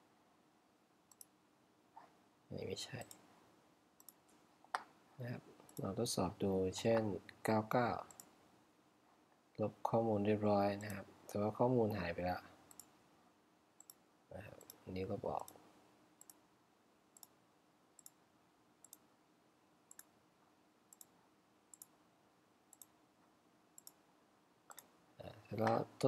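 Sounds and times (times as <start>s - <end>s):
computer mouse clicks: 1.1s - 1.4s, 3.0s - 3.2s, 4.0s - 4.9s, 8.1s - 8.3s, 12.7s - 12.9s, 13.8s - 14.0s, 16.2s - 16.4s, 17.2s - 17.4s, 18.0s - 18.2s, 18.8s - 19.1s, 19.9s - 20.1s, 20.9s - 22.0s, 22.7s - 23.0s, 23.8s - 24.0s, 24.7s - 24.9s.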